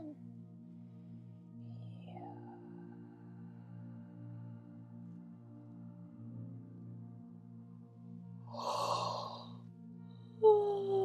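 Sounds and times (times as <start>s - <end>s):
low ambient music drone: 0.0s - 11.0s
woman's breathy sigh: 8.6s - 9.5s.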